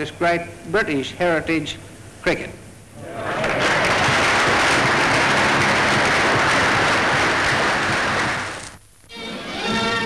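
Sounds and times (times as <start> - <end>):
audience applauding: 3.1 - 8.7.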